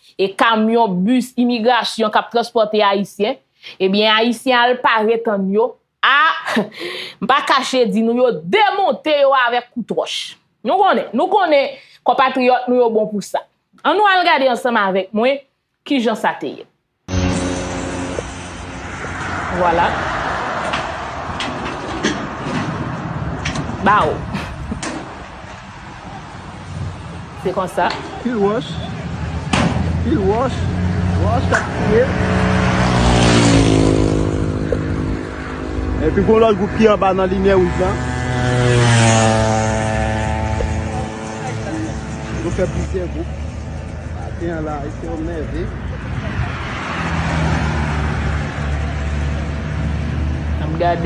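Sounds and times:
highway traffic road noise: 0.0s - 2.9s, 17.1s - 51.0s
vehicle engine hum: 17.1s - 51.0s.

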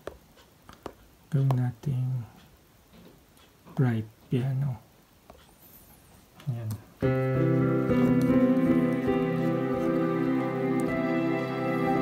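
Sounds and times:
digital piano with strings chords: 7.0s - 12.0s.

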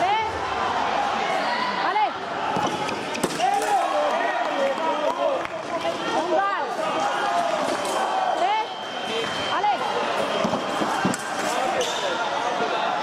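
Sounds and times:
chatter of voices in hall: 0.0s - 13.0s
shoes squeaking on floor: 10.2s - 12.2s.

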